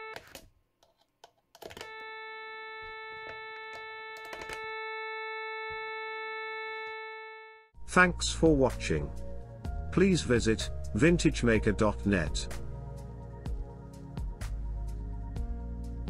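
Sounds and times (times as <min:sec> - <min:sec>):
buzzy sawtooth test tone: 0:01.9 - 0:07.7.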